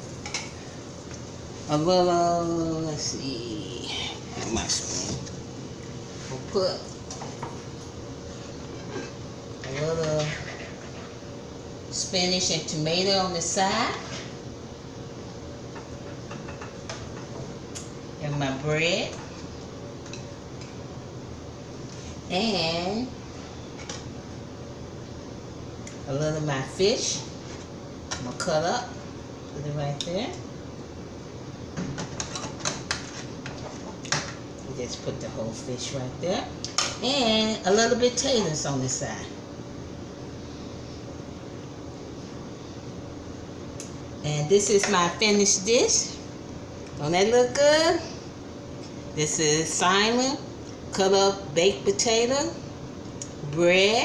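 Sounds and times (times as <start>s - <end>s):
faint steady hum: 0.0s - 54.0s
steady background hiss: 0.0s - 54.0s.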